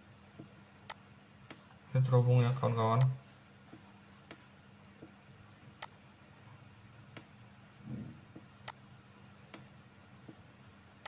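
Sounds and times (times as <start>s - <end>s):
low electrical hum: 0.0s - 11.0s
mouse clicks: 0.4s - 1.6s.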